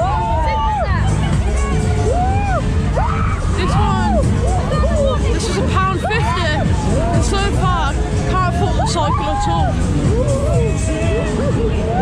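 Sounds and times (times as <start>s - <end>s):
pumping music with heavy beat: 0.0s - 12.0s
voices calling and whooping: 0.0s - 12.0s.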